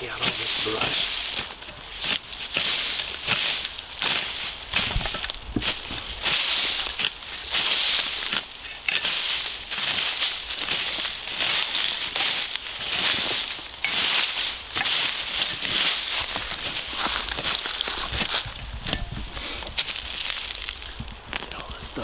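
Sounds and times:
rake scraping through dry dirt: 0.0 - 22.0.

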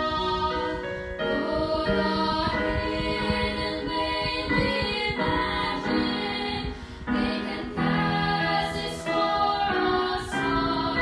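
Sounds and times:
female trio singing gospel: 0.0 - 11.0.

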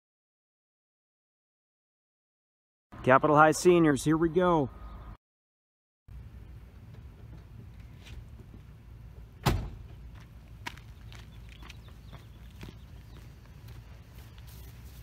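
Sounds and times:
low outdoor rumble: 6.1 - 15.0
truck door slamming: 9.4 - 10.0.

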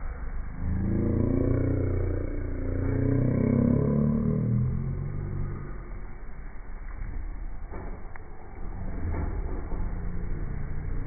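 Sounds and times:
vehicle engine running: 0.0 - 7.6.

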